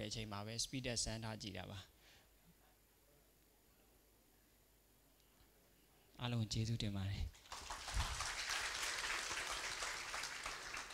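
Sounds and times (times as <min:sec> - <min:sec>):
audience applause: 0:07.4 - 0:10.9.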